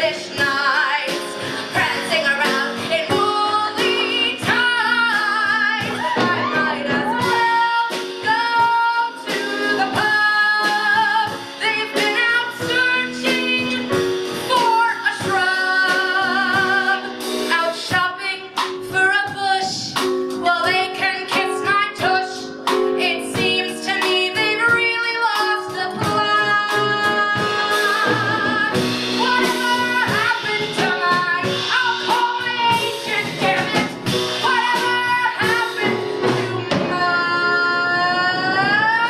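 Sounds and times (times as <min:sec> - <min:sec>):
instrumental accompaniment: 0:00.0 - 0:39.0.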